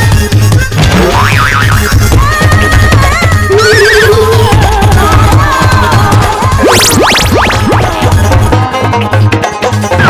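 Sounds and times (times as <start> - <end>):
cartoon boing sound effect: 0.8 - 2.0, 6.6 - 8.2.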